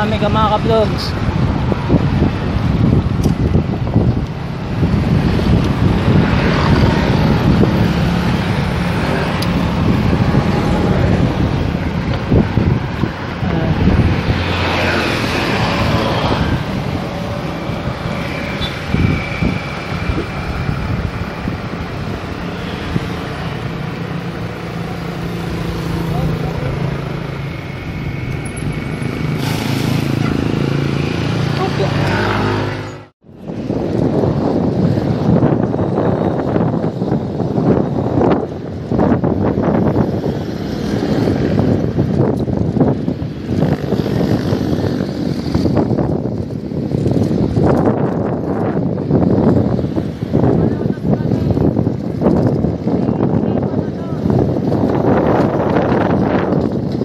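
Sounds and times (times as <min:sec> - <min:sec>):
road traffic: 0:00.0 - 0:57.0
wind rushing over microphone: 0:00.0 - 0:57.0.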